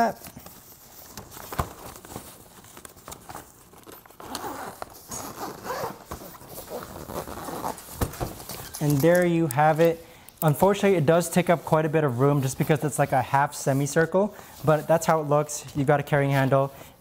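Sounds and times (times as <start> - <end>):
zipper being drawn shut: 3.9 - 8.0.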